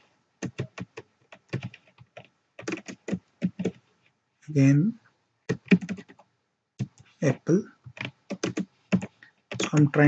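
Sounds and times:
typing on a computer keyboard: 0.4s - 3.8s, 5.5s - 7.1s, 7.8s - 10.0s.

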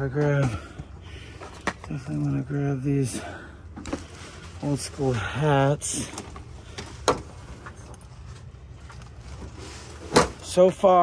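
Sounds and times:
items being handled: 0.0s - 10.6s
low steady rumble: 0.0s - 11.0s.

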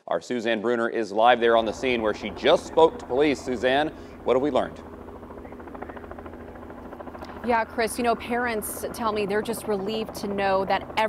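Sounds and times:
distant pulsing mechanical drone: 1.3s - 11.0s.

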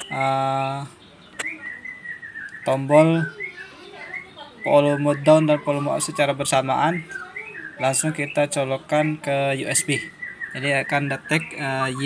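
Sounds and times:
man's drawn-out hesitation sound: 0.0s - 1.0s, 2.6s - 3.3s, 4.7s - 7.1s, 7.8s - 12.0s
small birds chirping: 0.0s - 12.0s.

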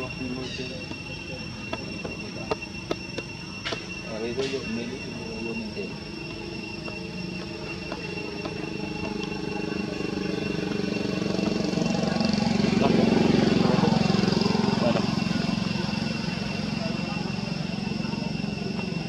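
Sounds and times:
vehicle engine passing by: 8.6s - 19.0s.

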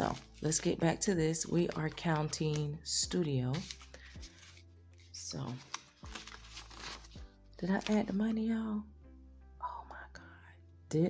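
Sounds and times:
quiet background music: 0.0s - 11.0s
woman whispering: 9.6s - 10.6s.

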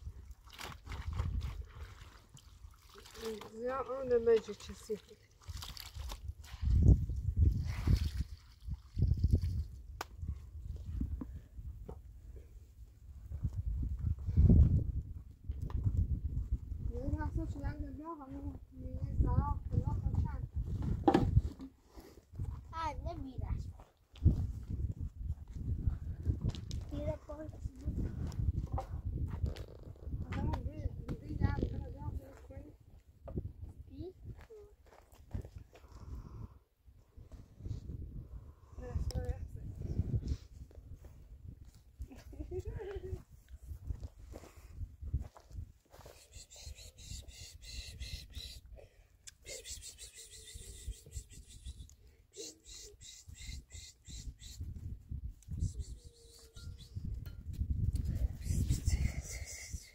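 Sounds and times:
woman talking: 3.1s - 5.2s, 16.9s - 19.4s, 38.8s - 39.7s
child talking: 16.9s - 20.5s, 22.6s - 23.8s, 26.8s - 28.1s, 30.2s - 32.8s, 33.9s - 34.9s, 55.7s - 56.6s.

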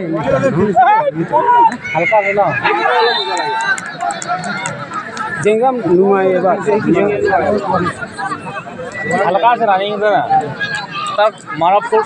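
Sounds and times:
people talking and calling out: 0.0s - 12.0s
spectator crowd noise: 0.0s - 12.0s.

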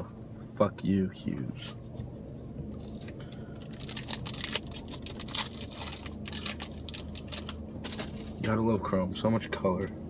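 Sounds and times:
trading cards rustling: 2.8s - 8.4s.

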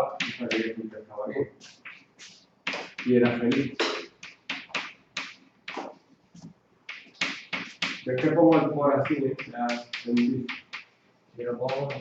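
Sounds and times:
chalk tapping and scraping on board: 0.0s - 0.8s, 1.6s - 11.0s, 11.6s - 12.0s.

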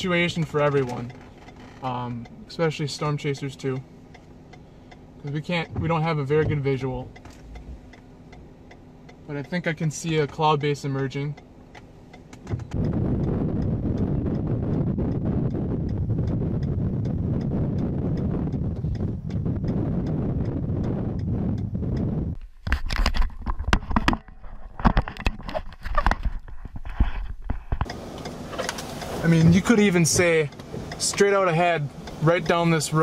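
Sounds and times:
raindrops hitting car windshield: 0.0s - 33.0s
steady low rumble: 0.0s - 33.0s.

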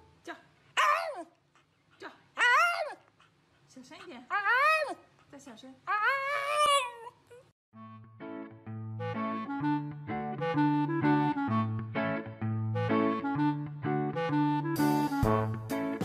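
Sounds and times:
dog whining: 0.8s - 3.3s, 4.3s - 5.1s, 5.9s - 7.5s.

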